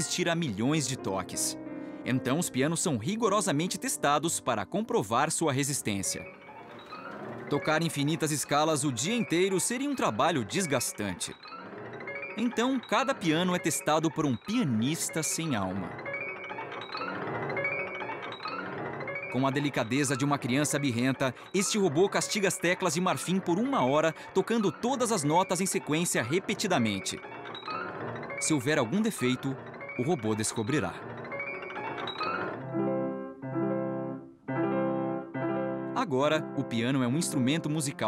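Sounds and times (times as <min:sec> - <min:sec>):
piano runs of notes: 0:00.0 - 0:38.0.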